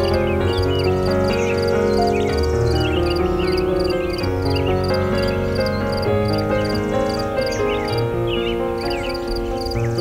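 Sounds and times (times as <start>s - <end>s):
birds chirping: 0.0s - 10.0s
soft piano music: 0.0s - 10.0s.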